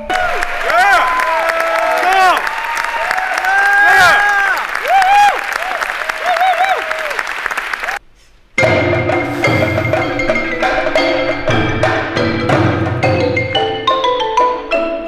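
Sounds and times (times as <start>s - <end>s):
audience applauding: 0.0s - 8.0s
crowd whooping and cheering: 0.0s - 8.0s.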